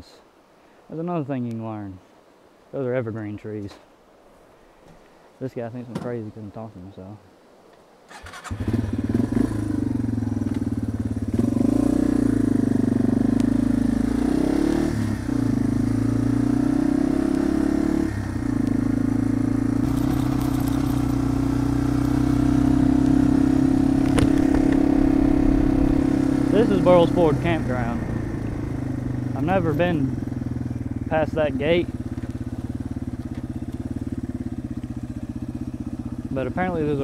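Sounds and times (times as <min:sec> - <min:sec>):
motorcycle engine pulling away: 0:08.1 - 0:37.0.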